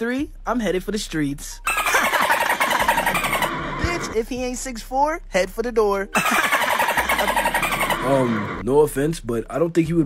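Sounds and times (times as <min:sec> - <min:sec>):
engine-like rattling buzz: 0:01.7 - 0:04.3, 0:06.2 - 0:08.6.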